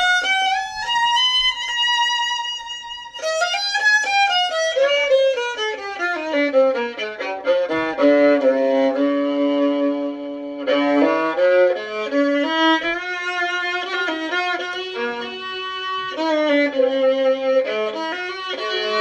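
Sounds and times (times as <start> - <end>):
bowed fiddle tune: 0.0 - 19.0.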